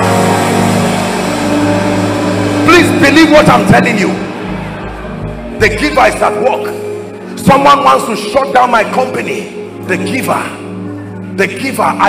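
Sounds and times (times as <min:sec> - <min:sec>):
congregation noise: 0:00.0 - 0:11.8
sustained keyboard chord: 0:00.0 - 0:12.0.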